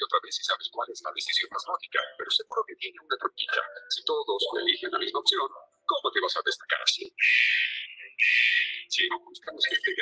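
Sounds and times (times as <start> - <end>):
person talking quickly: 0.0 - 10.0.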